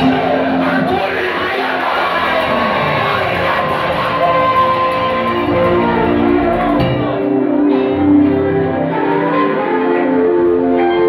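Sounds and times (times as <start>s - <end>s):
keyboard playing held notes: 0.0s - 11.0s
live worship band music: 0.0s - 11.0s.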